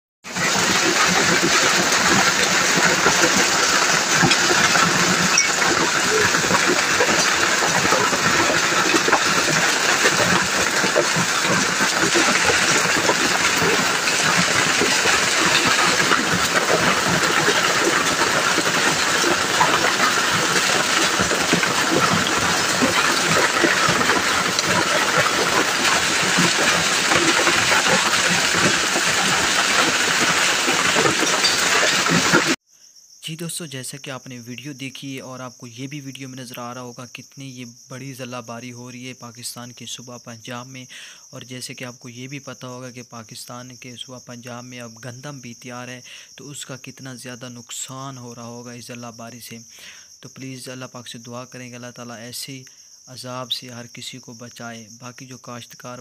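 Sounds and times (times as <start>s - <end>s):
hailstones pelting ground and leaves: 0.3s - 32.6s.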